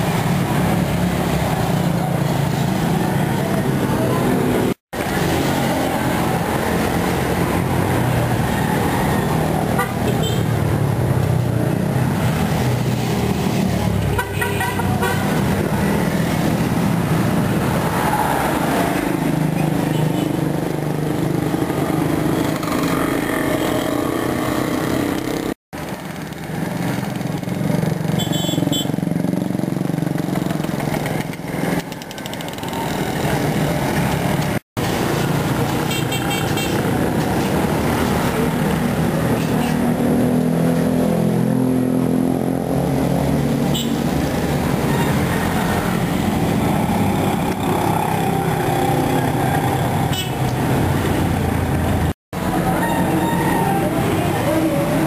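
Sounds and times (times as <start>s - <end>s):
car engines passing: 0.0s - 55.0s
motorcycle engines passing: 0.0s - 55.0s
car horn toots: 28.2s - 28.9s.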